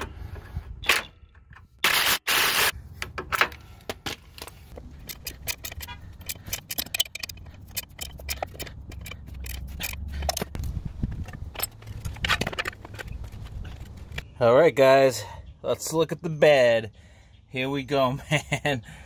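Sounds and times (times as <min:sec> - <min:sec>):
ratchet clicking and rattling: 0:04.9 - 0:14.2.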